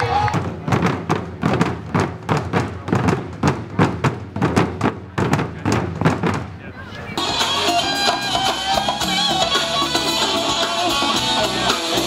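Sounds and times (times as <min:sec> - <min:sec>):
taiko drums: 0:00.0 - 0:06.6.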